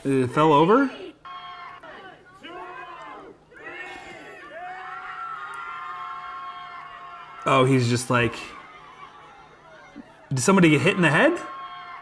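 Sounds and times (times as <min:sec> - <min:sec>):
crowd cheering and shouting: 0:00.6 - 0:12.0
long held screams: 0:00.9 - 0:07.9, 0:11.0 - 0:12.0.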